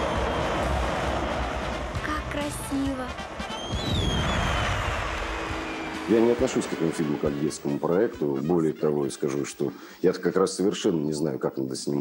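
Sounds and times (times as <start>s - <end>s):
high whistling tone: 0.0s - 1.8s, 3.4s - 8.0s
snowmobile engine running: 0.0s - 7.8s.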